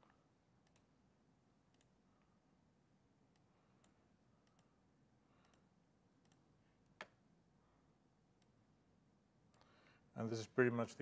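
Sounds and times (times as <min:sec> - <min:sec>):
faint computer mouse clicks: 0:00.1 - 0:00.9, 0:01.7 - 0:02.3, 0:03.3 - 0:04.7, 0:05.4 - 0:07.2.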